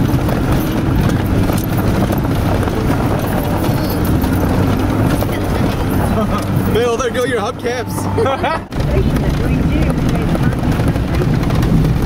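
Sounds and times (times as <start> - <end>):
car engine and road rumble: 0.0 - 12.0
knocks and rattles: 0.0 - 12.0.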